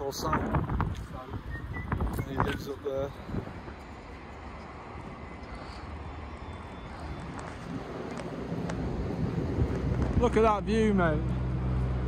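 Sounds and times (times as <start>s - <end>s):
wind on microphone: 0.0s - 3.8s, 6.7s - 10.5s
city traffic rumble: 0.0s - 12.0s.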